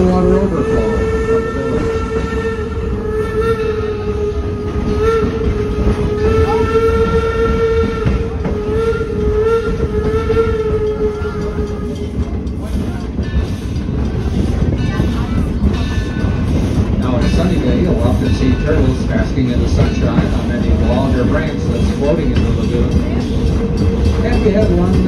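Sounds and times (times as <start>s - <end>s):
train cars rumbling: 0.0s - 25.0s
wheels clicking on track: 0.0s - 25.0s.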